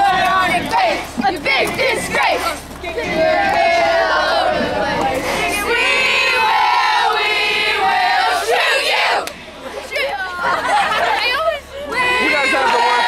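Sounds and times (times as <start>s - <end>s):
girls chanting and yelling: 0.0s - 13.0s.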